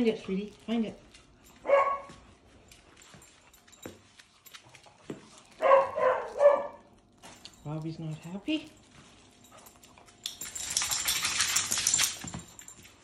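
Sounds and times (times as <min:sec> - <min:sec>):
dog barking: 0:01.6 - 0:02.2, 0:05.6 - 0:06.9.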